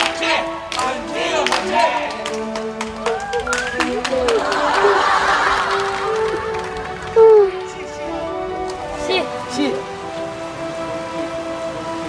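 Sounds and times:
sustained background music notes: 0.0s - 12.0s
steady hiss of spraying water: 3.8s - 12.0s.

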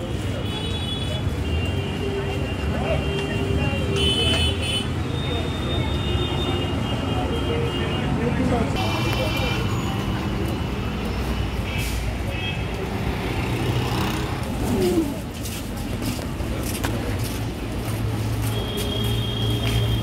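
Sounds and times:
people talking: 0.0s - 10.6s
road traffic: 0.0s - 20.0s.

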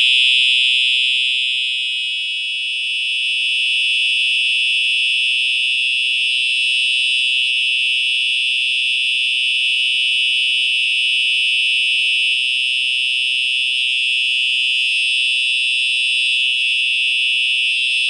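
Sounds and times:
fire alarm horn blaring: 0.0s - 18.0s.

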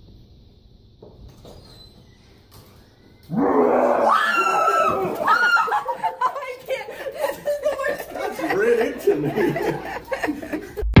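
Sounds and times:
woman screaming: 3.3s - 6.6s.

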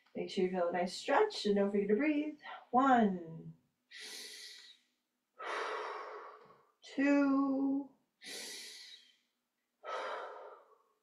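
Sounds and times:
woman breathing: 3.9s - 6.7s, 8.2s - 11.0s.

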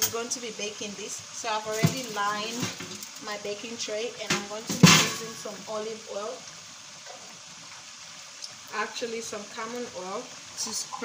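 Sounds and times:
chicken frying in hot oil: 0.0s - 11.0s.

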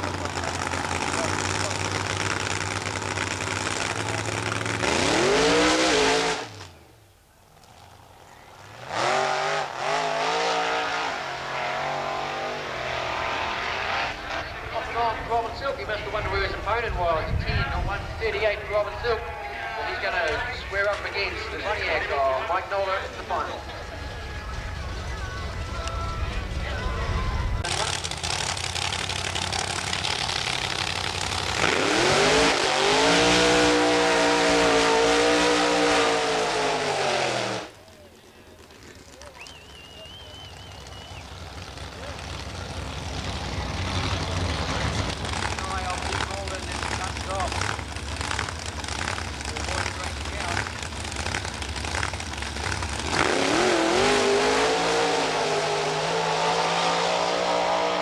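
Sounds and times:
outdoor noise: 0.0s - 58.0s
race car engines at full throttle: 0.0s - 58.0s.

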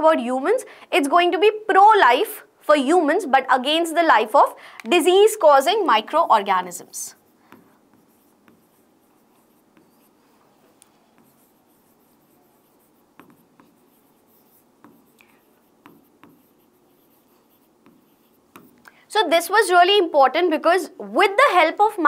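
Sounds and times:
pen scratching on board: 6.1s - 18.8s
pen tapping on board: 7.5s - 10.1s, 11.1s - 18.8s.

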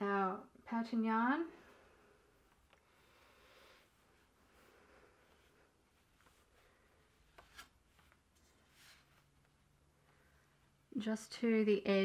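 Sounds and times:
yarn rustling on loom: 1.6s - 10.8s.

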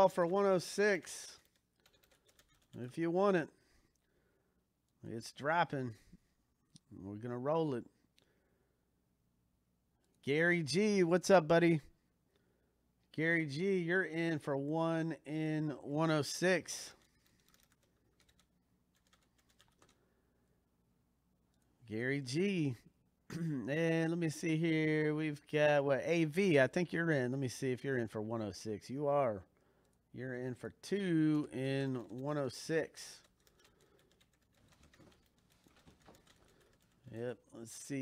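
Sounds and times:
typing on computer keyboard: 0.0s - 3.0s, 17.0s - 20.1s, 31.8s - 37.2s.

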